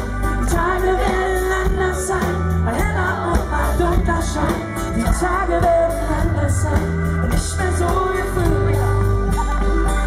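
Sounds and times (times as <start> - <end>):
acoustic guitar: 0.0 - 10.0
band with steady beat: 0.0 - 10.0
man singing: 0.0 - 10.0.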